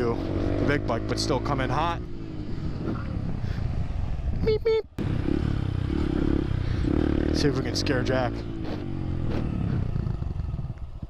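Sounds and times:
motorcycle engine: 0.0 - 4.4, 5.0 - 11.0
wind and road noise: 0.0 - 11.0.

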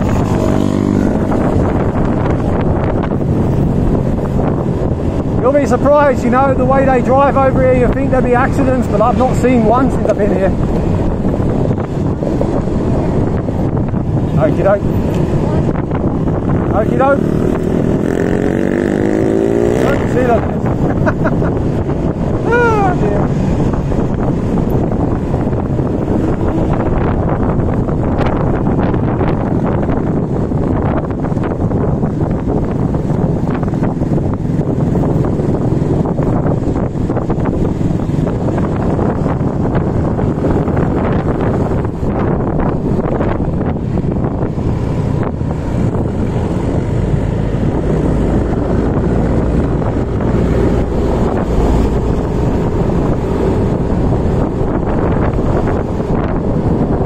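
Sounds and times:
road noise: 0.0 - 57.0
wind buffeting microphone: 0.0 - 57.0.

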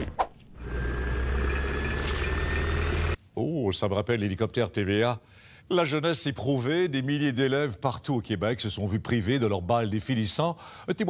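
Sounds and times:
helicopter rotor and engine rumble: 0.7 - 3.2.

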